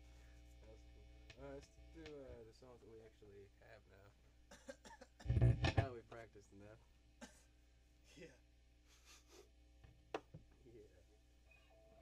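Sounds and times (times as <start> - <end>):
person coughing: 4.5 - 5.4.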